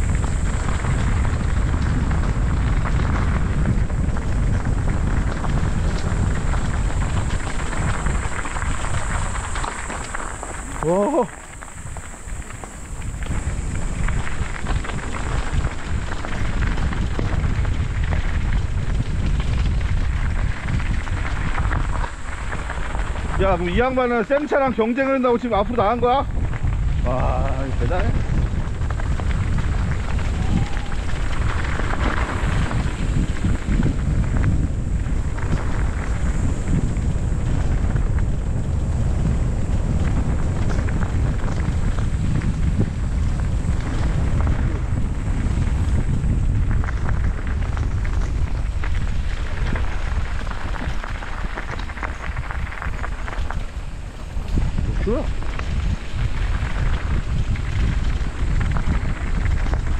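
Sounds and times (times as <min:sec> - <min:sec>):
tyres rumbling over gravel: 0:00.0 - 0:59.9
wind buffeting microphone: 0:00.0 - 0:59.9.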